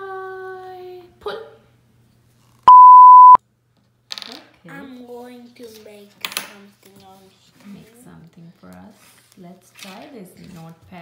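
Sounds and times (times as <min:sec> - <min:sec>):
electronic beep: 0:02.7 - 0:03.4.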